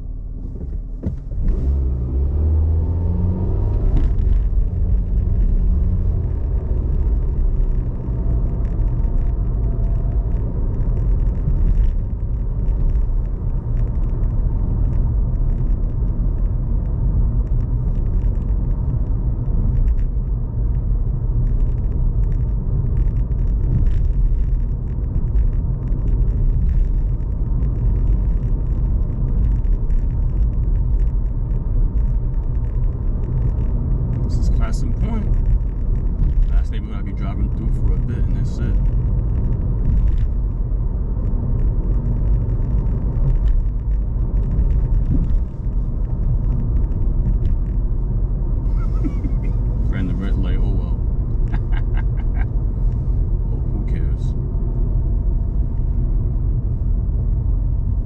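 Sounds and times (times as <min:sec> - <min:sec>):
car cabin road and engine rumble: 0:00.0 - 0:58.0
tyre noise on road: 0:00.0 - 0:58.0.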